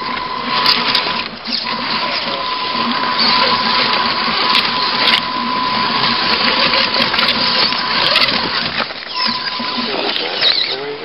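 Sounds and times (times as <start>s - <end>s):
electric motor whine: 0.0s - 11.0s
grinding rattling on rocks: 0.0s - 11.0s.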